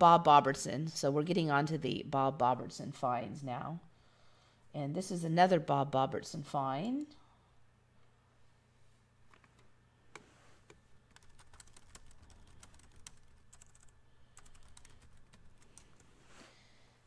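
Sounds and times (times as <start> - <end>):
steady low hum: 0.0 - 17.0
typing on computer keyboard: 11.1 - 16.0.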